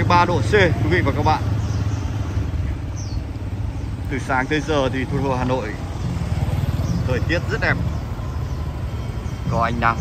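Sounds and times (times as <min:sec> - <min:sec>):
low traffic rumble: 0:00.0 - 0:10.0
motor scooter engine passing: 0:00.0 - 0:10.0.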